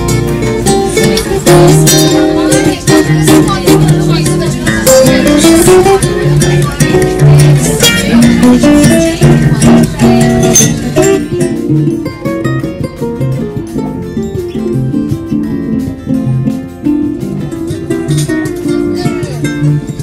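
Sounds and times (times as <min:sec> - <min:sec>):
acoustic guitars plucking: 0:00.0 - 0:20.0.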